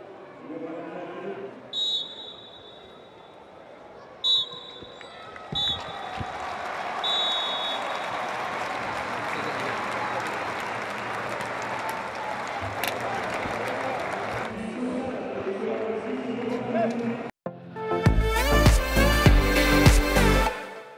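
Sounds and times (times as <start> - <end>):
referee's whistle blasts: 1.7 - 3.3, 4.2 - 6.2, 7.0 - 8.2
crowd applauding and cheering: 5.0 - 15.5.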